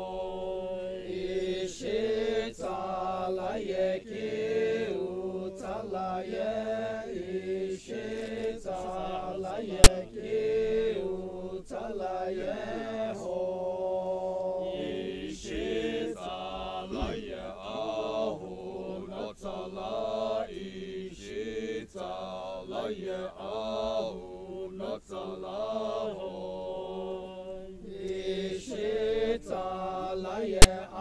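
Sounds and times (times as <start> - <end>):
men chanting in unison: 0.0 - 31.0.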